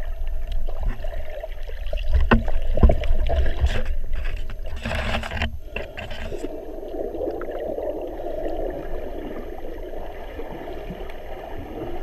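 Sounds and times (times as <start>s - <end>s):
muffled underwater rumble: 0.0s - 12.0s.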